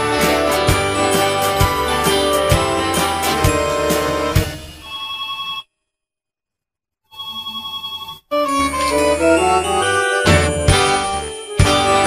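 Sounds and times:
warbling telephone ring: 7.1 - 10.4.

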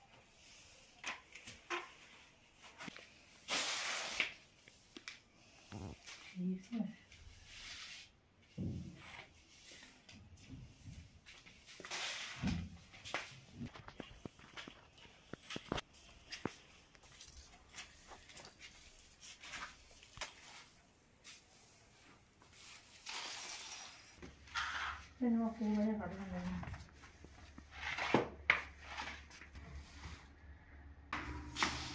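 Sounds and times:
slippered footsteps on stone tiles: 12.8 - 20.4.

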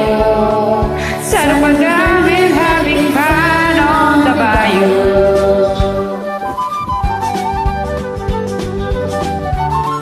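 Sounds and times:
instrumental karaoke backing track: 0.0 - 10.0.

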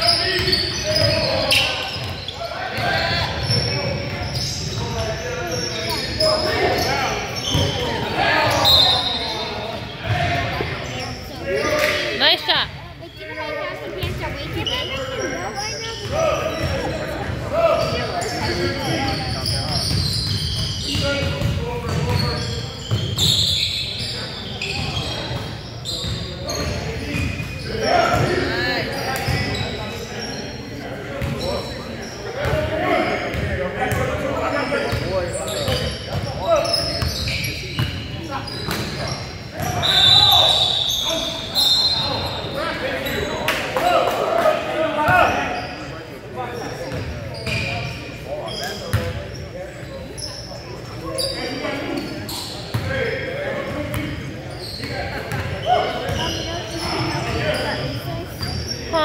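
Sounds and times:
players' voices and shouts: 0.0 - 59.0.

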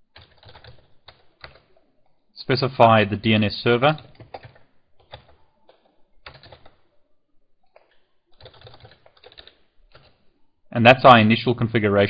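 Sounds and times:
typing on computer keyboard: 0.1 - 1.7, 3.9 - 6.8, 7.8 - 10.2.

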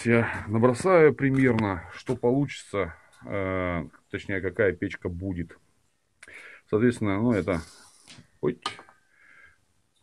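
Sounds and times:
chalk scratching on steel: 7.3 - 8.1.

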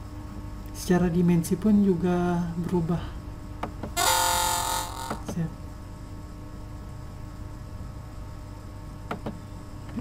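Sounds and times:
computer alert chime: 4.0 - 5.2.

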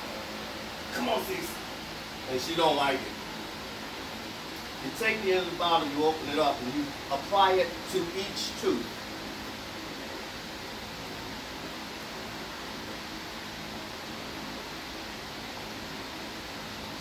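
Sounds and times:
room noise hiss: 0.0 - 17.0.

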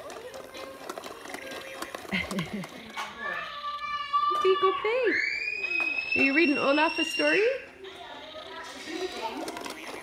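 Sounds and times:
plastic toy balls clicking: 0.0 - 4.6, 8.1 - 10.0.

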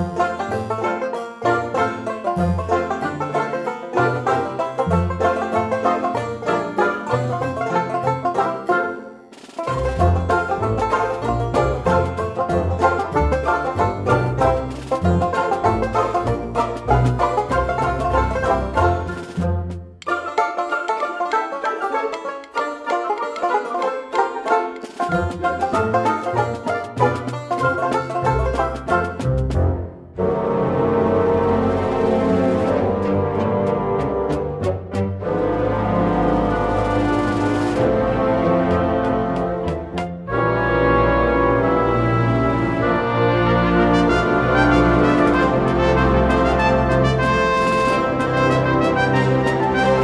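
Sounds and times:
bluegrass banjo music: 0.0 - 50.0
pulsing bass line: 9.7 - 20.0, 25.1 - 50.0.

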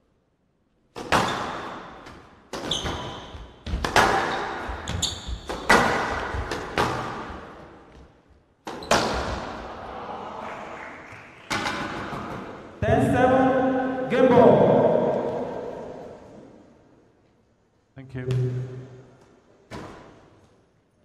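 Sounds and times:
squash ball impacts: 0.9 - 9.6, 19.7 - 20.3
court shoes squeaking: 1.0 - 9.6.

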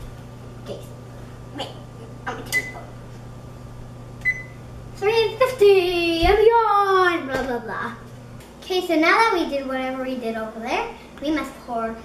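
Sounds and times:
oven control panel beep: 2.5 - 2.9, 4.2 - 4.7.

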